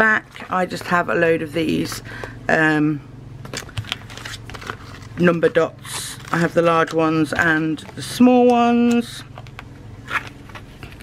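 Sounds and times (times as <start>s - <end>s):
plastic sticker sheets rustling: 0.0s - 2.4s, 3.4s - 11.0s.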